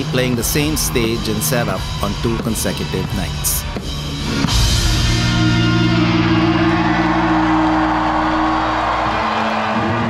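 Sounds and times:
rock band chord ringing out: 4.2 - 9.0
crowd cheering and whooping: 5.4 - 10.0.

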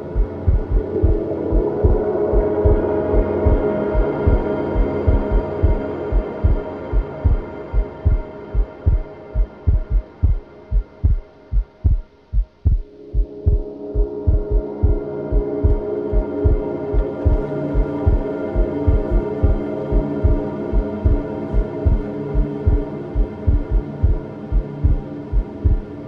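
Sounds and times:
sustained synth chords: 0.0 - 26.0
thumping bass pulse: 0.1 - 1.2, 4.2 - 13.6, 21.8 - 25.9.

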